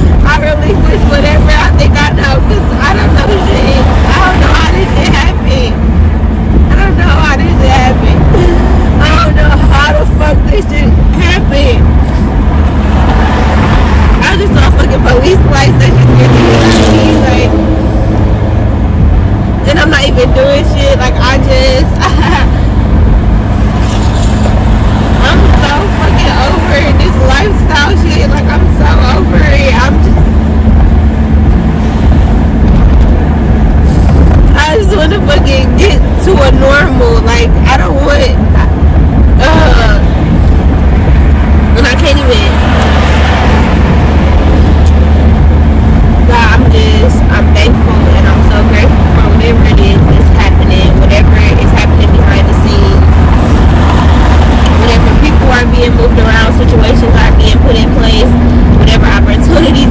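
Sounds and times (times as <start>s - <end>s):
road and engine rumble: 0.0s - 59.9s.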